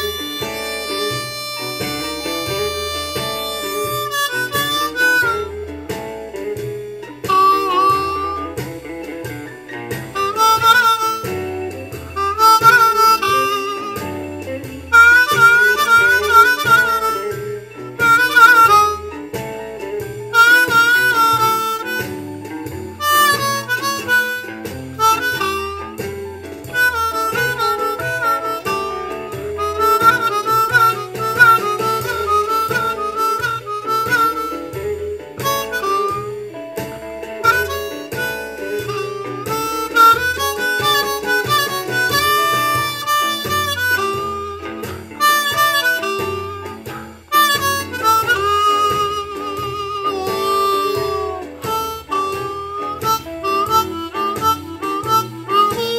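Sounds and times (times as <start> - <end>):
harmonica playing blues: 0.0 - 55.9
shuffle backing track: 0.0 - 55.9.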